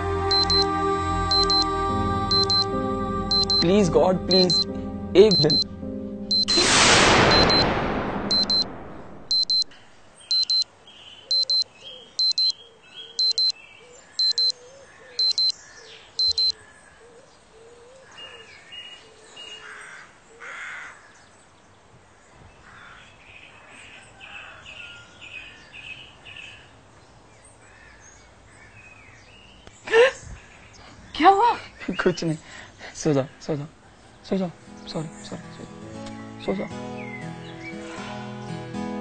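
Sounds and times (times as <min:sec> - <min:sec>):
electronic alarm beeping in pairs: 0:00.3 - 0:00.7, 0:01.3 - 0:01.7, 0:02.3 - 0:02.7, 0:03.3 - 0:03.7, 0:04.3 - 0:05.7, 0:06.3 - 0:10.7, 0:11.3 - 0:12.6, 0:13.2 - 0:13.6, 0:14.2 - 0:14.6, 0:15.2 - 0:15.6, 0:16.2 - 0:16.6
birds chirping: 0:08.5 - 0:21.9, 0:22.5 - 0:38.0.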